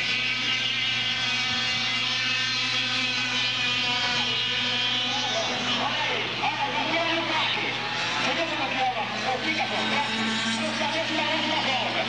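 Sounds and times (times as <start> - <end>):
kart engines racing: 0.0 - 12.0.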